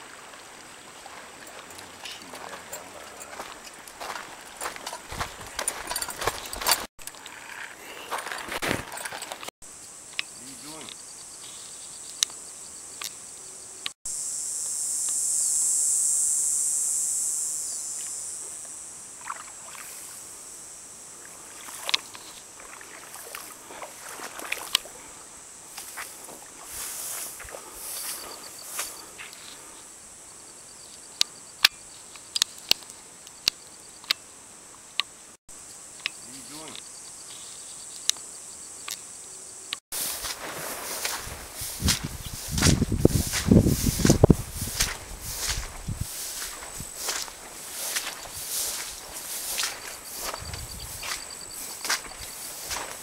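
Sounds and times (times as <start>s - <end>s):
steady high insect whine: 9.6s - 53.0s
high-pitched insect buzz: 9.7s - 53.0s.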